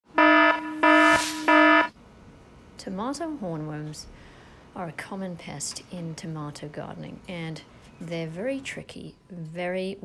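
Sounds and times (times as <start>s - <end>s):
buzzer-like electronic tones: 0.1s - 1.9s
noisy whoosh: 0.5s - 1.9s.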